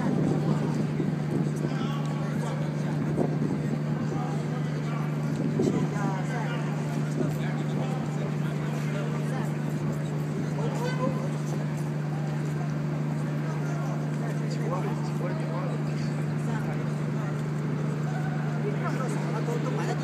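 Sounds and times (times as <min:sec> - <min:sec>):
low machine hum: 0:00.0 - 0:20.0
people talking in background: 0:00.0 - 0:20.0.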